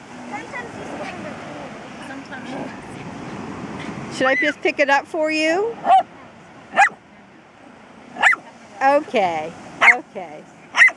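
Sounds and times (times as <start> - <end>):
small dog yipping: 5.8 - 6.1, 6.7 - 7.0, 8.2 - 8.4, 9.8 - 10.0.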